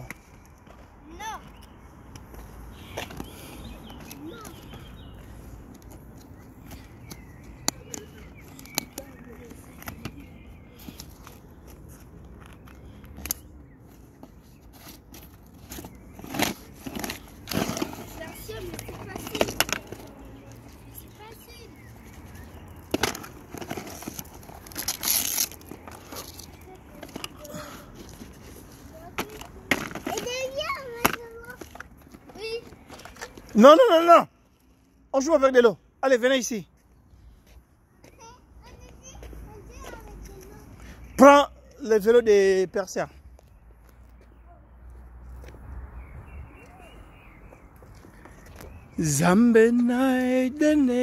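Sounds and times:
scraping rustle: 0:14.3 - 0:20.3, 0:22.1 - 0:30.7
strap handling sounds: 0:22.0 - 0:30.4.

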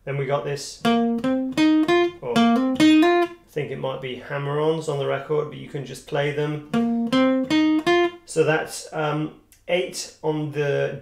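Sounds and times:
acoustic guitar picking notes: 0:00.8 - 0:03.4, 0:06.7 - 0:08.2.

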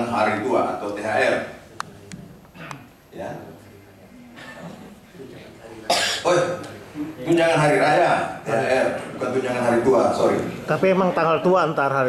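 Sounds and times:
man coughing: 0:05.9 - 0:06.4.

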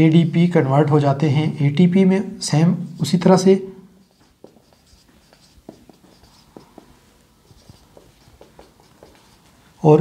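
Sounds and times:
marker squeaking on whiteboard: 0:02.8 - 0:10.0
marker tapping on whiteboard: 0:04.0 - 0:09.5.

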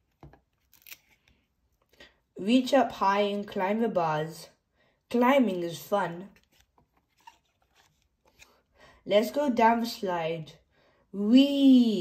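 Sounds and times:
cardboard page turning: 0:00.0 - 0:01.4, 0:06.2 - 0:08.6.

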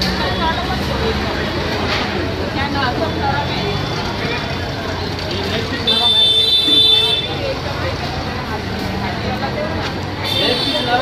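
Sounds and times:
street traffic: 0:00.0 - 0:11.0
voices: 0:00.0 - 0:11.0
vehicle horn: 0:05.9 - 0:07.4, 0:10.2 - 0:11.0.

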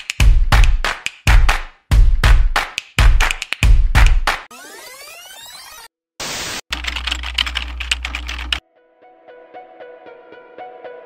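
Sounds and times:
rapid clicking: 0:06.7 - 0:08.6.

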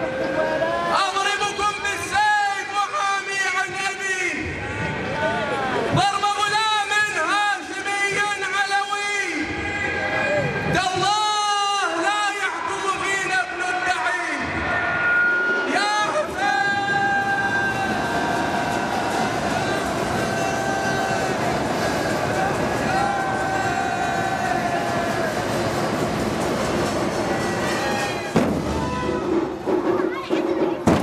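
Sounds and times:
crowd noise: 0:00.0 - 0:31.0
heavy thumps: 0:28.2 - 0:30.1, 0:30.8 - 0:31.0
sharp knock: 0:28.3 - 0:29.0.

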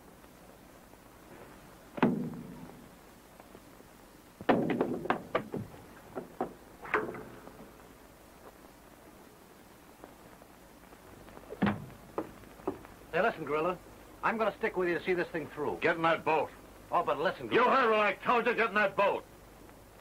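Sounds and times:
fistfight thuds and knocks: 0:02.0 - 0:02.7, 0:04.4 - 0:05.7.

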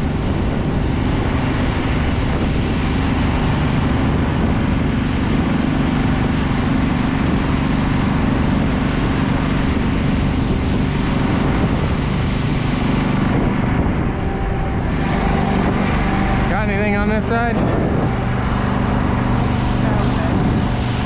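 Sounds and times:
fire truck engine running: 0:00.0 - 0:21.0
water stream hissing onto ground: 0:18.6 - 0:21.0.

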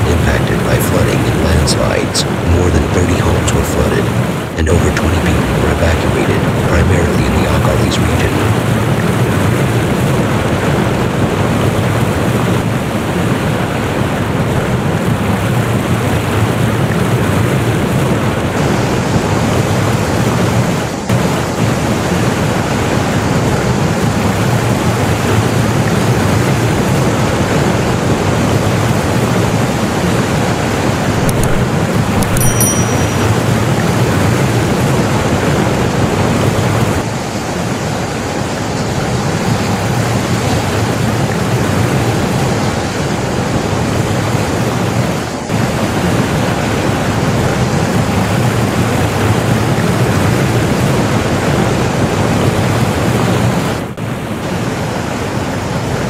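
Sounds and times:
rushing floodwater: 0:00.0 - 0:32.0, 0:33.8 - 0:56.0
heavy rain: 0:00.0 - 0:32.2, 0:33.5 - 0:56.0.

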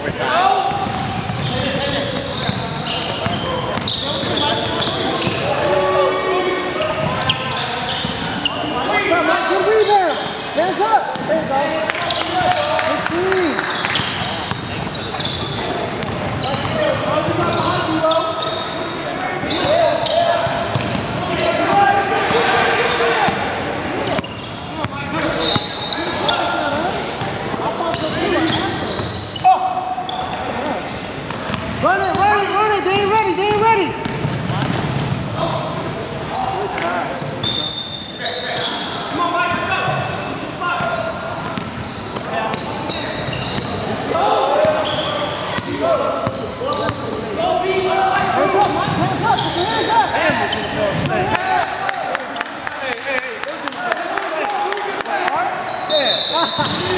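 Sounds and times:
basketball bouncing on court: 0:00.7 - 0:05.4, 0:13.7 - 0:17.7, 0:19.4 - 0:22.4, 0:31.3 - 0:32.2, 0:33.0 - 0:35.4, 0:50.2 - 0:51.4, 0:56.5 - 0:56.9.

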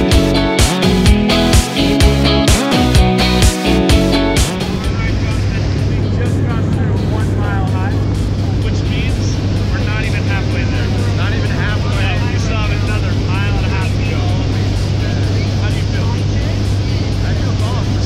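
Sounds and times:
propeller plane engine drone: 0:03.7 - 0:18.0
people talking: 0:04.7 - 0:18.0.

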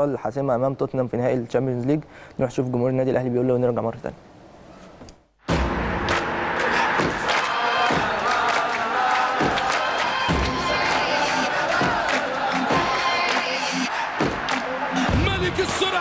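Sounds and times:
music: 0:05.5 - 0:16.0
stadium crowd cheering and chanting: 0:05.6 - 0:16.0.

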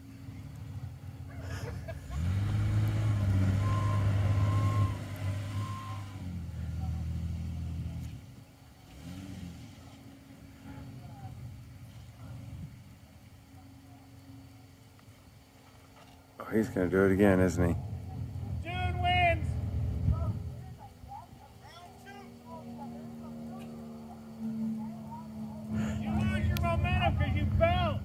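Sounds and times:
truck engine revving: 0:00.0 - 0:14.9, 0:16.5 - 0:28.0.

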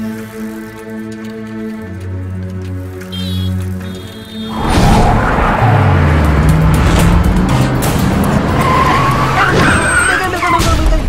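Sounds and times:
background music: 0:00.0 - 0:11.0
tyres skidding and squealing: 0:02.9 - 0:11.0.

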